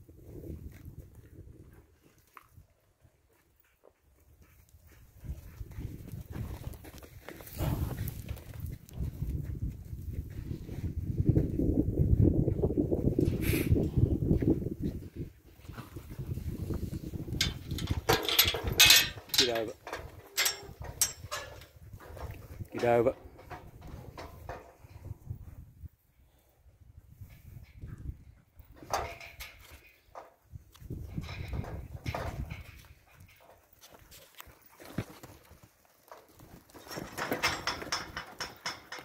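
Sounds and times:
shuffling hooves and paws: 0.3 - 17.2, 27.2 - 39.0
hoof thuds on dirt: 3.3 - 19.0, 28.8 - 39.0
low rumbling on microphone: 7.5 - 18.0.

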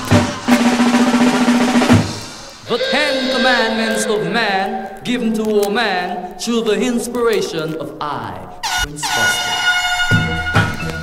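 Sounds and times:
air horn effect blaring: 2.6 - 5.0
man speaking: 2.7 - 9.6.

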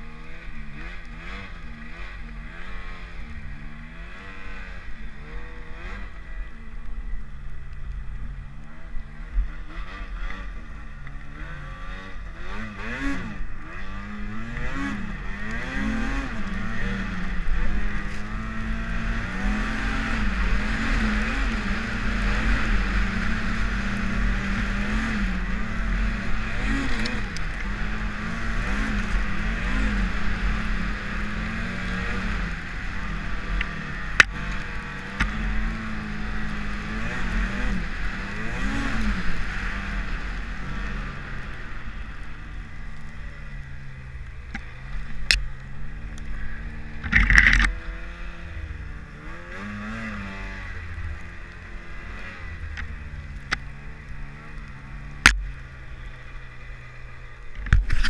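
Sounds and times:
snowmobile engine revving: 0.0 - 58.0.

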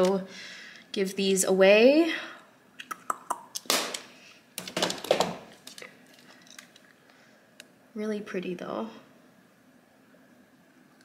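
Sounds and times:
handling noise: 4.6 - 6.8.

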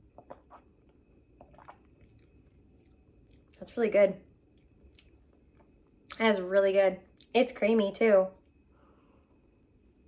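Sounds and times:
person sipping and swallowing: 0.0 - 3.6.

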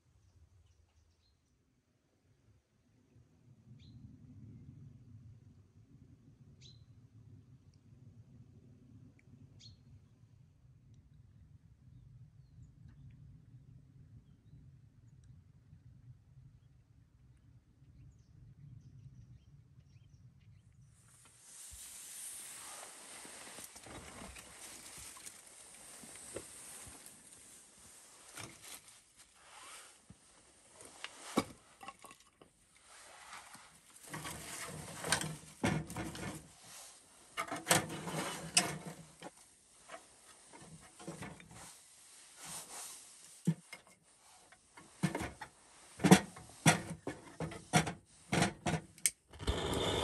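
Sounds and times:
steady hiss: 21.1 - 31.4.

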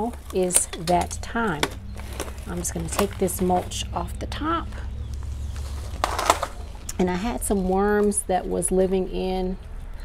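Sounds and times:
mulch rustling crunch: 0.0 - 4.0, 5.1 - 7.0
steady low rumble: 0.0 - 9.4.

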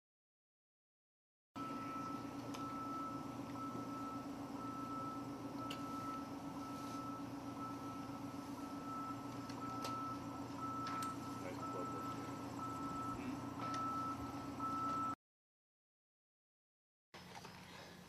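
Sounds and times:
high electronic beeping tone: 1.6 - 15.2
steady low hum: 1.6 - 15.2.

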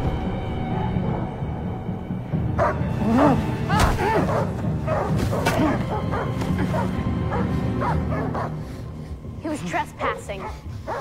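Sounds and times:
dog barking: 2.6 - 2.8, 4.2 - 8.6, 10.0 - 11.0.

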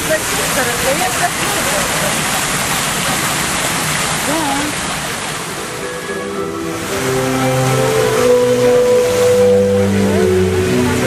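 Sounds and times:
fountain water jets rushing: 0.0 - 11.0
music with long-held notes: 5.4 - 11.0.

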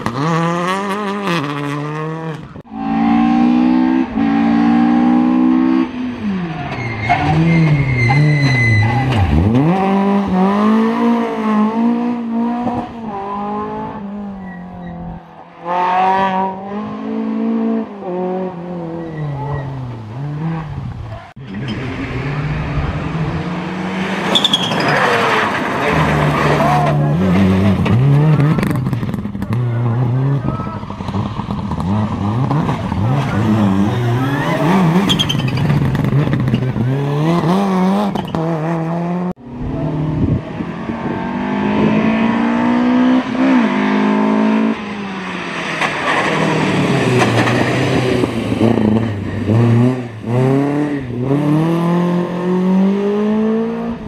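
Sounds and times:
rally car engine revving through gears: 0.0 - 54.0.

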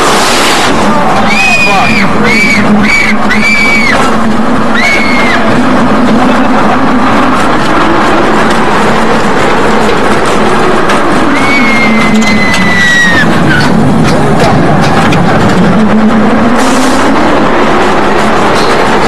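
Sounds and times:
roller coaster wheels rumbling: 0.0 - 19.0
high falling squeal: 1.0 - 5.8, 11.2 - 13.8.

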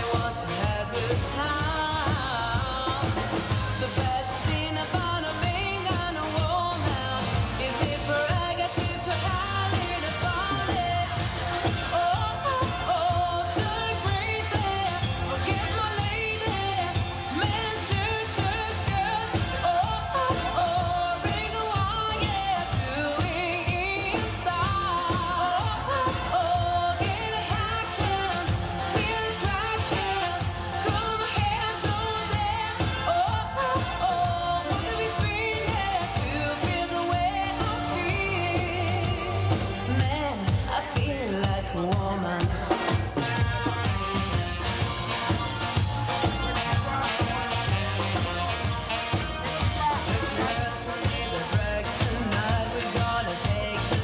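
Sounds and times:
live dance band playing pop: 0.0 - 54.0
woman singing into a microphone: 0.0 - 54.0.

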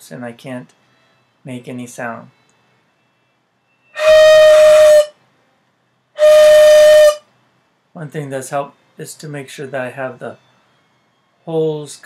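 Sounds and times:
bamboo flute notes: 3.8 - 5.2, 6.2 - 7.3.

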